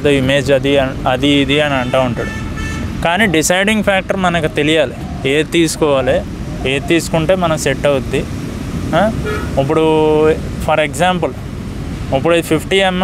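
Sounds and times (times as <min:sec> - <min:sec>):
man talking: 0:00.0 - 0:02.4, 0:03.0 - 0:11.4, 0:12.1 - 0:13.0.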